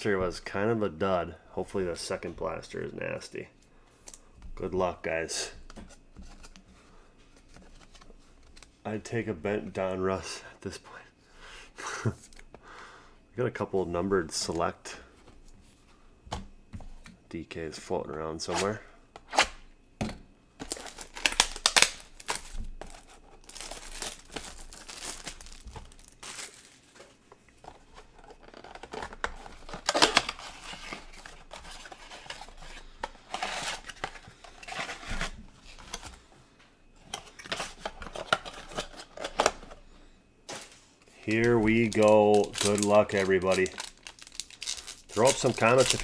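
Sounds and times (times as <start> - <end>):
foil packs crinkling: 20.6 - 27.2, 27.8 - 36.2, 40.6 - 46.0.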